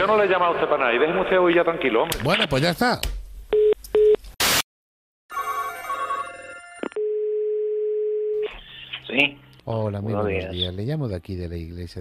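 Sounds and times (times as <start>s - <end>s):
dial tone: 6.8s - 8.4s.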